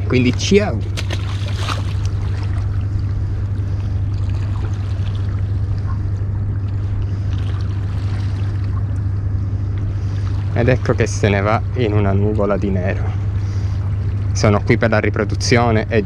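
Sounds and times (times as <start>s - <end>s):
sea water lapping on rocks: 0.0s - 9.0s
low hum: 0.0s - 16.0s.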